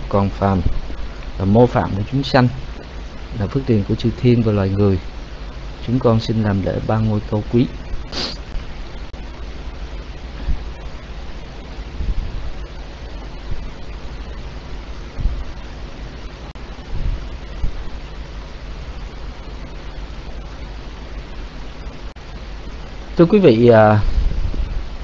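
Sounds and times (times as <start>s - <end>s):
microphone line hiss: 0.0s - 25.0s
soft low thumps: 7.7s - 22.8s.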